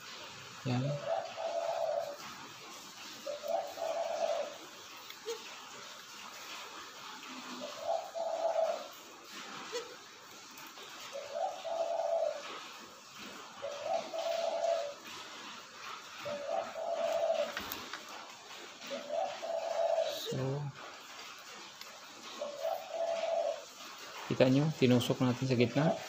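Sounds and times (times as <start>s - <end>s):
dove cooing: 0.2s - 26.0s.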